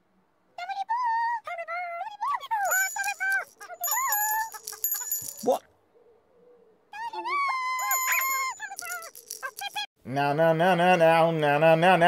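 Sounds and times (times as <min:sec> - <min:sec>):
bright ringing tones: 0:02.6 - 0:05.6, 0:07.8 - 0:09.4
squeaky character voices: 0:07.0 - 0:09.9.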